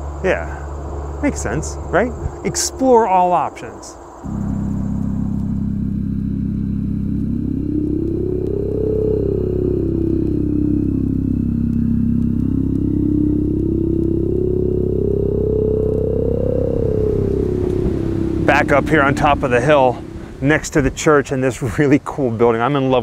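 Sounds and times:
car engine: 0.0s - 20.9s
road rumble: 0.0s - 23.0s.

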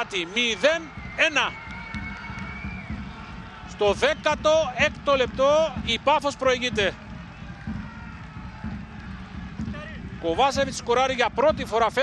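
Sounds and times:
low stadium rumble: 0.0s - 12.0s.

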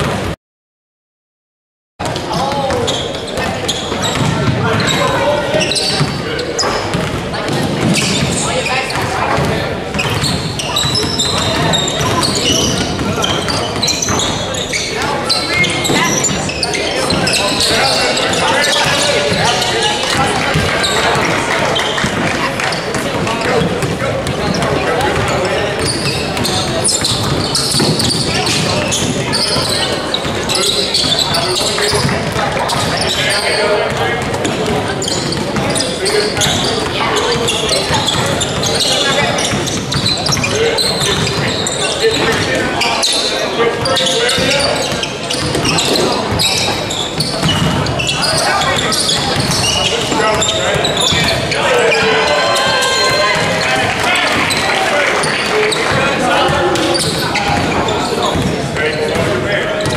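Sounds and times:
echoing shouts and talk: 2.0s - 59.9s.

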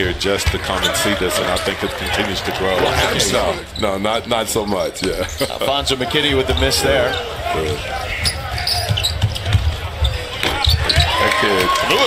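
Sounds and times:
sneakers squeaking: 0.0s - 4.0s, 4.6s - 12.0s.

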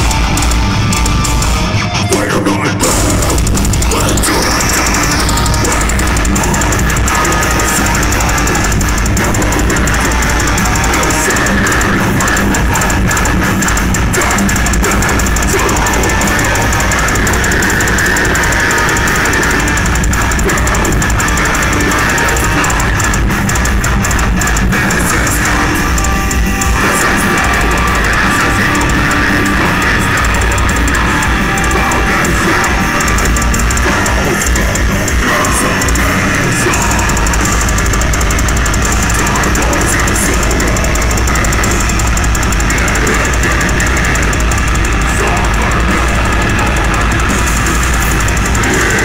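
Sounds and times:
heavy metal band playing: 0.0s - 49.0s.

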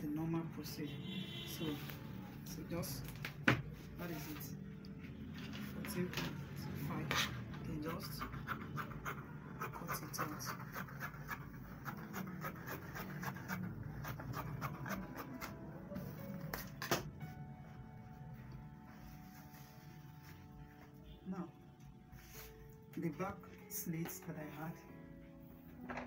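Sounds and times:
faint music with steady tones: 0.0s - 26.0s.

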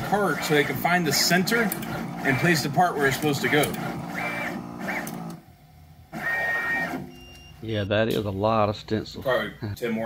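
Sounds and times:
machine motors whining: 0.0s - 5.5s, 6.1s - 7.4s.

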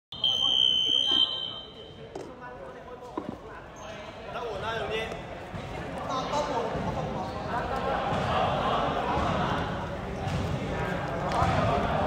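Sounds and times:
high-pitched signal tone: 0.1s - 1.8s
players' voices echoing: 0.1s - 12.0s.

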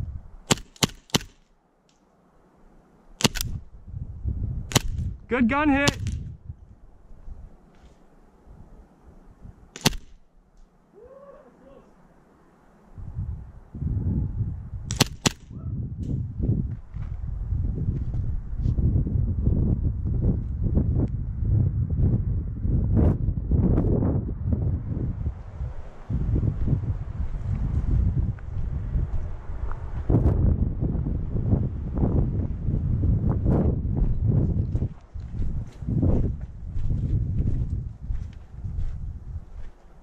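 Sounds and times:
airsoft pistol shots: 0.5s - 1.5s, 3.2s - 3.6s, 4.7s - 5.1s, 5.8s - 6.2s, 9.8s - 10.3s, 14.9s - 15.6s
movement rumble on microphone: 12.9s - 40.0s
footsteps on dirt: 16.6s - 17.3s, 34.0s - 40.0s.

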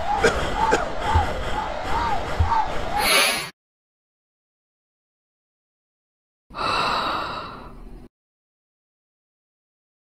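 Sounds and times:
person exhaling breathily: 0.0s - 3.5s, 6.5s - 7.9s.

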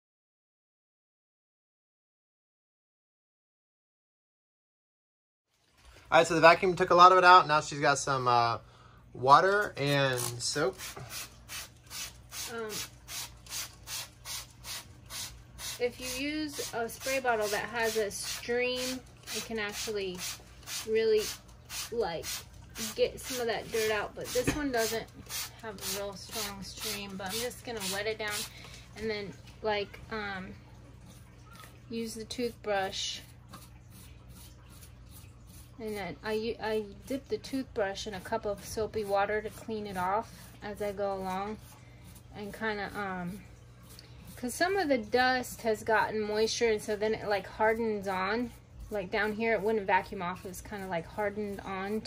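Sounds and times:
low steady hum: 5.5s - 52.0s
toothbrush scrubbing metal fins: 9.9s - 28.5s, 31.0s - 52.0s
spray bottle squirting: 10.2s - 28.5s.

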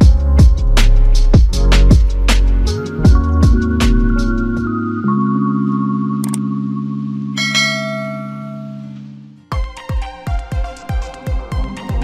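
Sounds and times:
low synth drone: 3.1s - 9.5s
bright bell chime: 7.4s - 9.0s.

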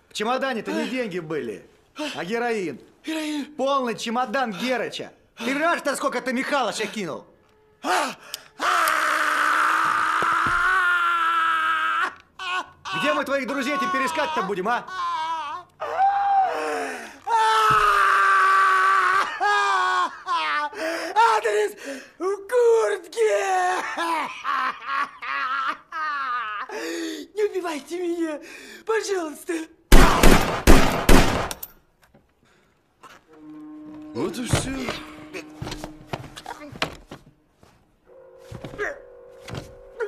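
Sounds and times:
person screaming: 7.8s - 20.7s.

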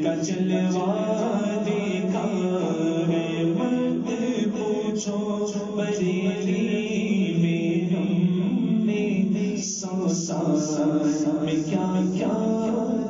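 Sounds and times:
person chanting in long notes: 0.0s - 13.0s.

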